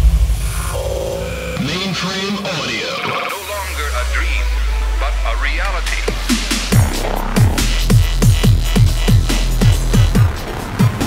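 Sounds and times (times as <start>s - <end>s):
deep bass hit: 0.0s - 1.8s
sustained synth tone: 0.0s - 5.5s
person speaking: 0.5s - 6.3s.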